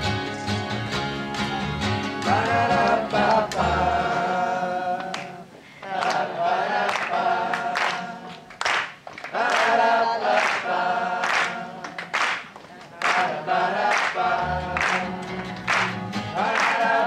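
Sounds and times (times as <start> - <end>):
hand claps keeping time: 1.2 - 3.8, 6.9 - 17.0
voices singing a cappella: 2.2 - 12.3, 12.9 - 17.0.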